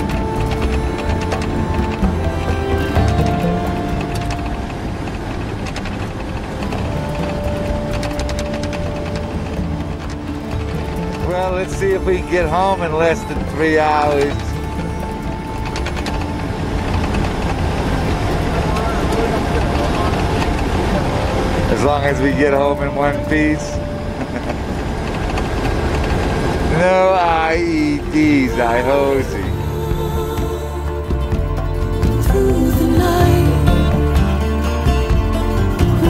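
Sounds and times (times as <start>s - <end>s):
vehicle body rattling: 0.0s - 32.3s
vehicle engine and tyre rumble: 0.0s - 36.0s.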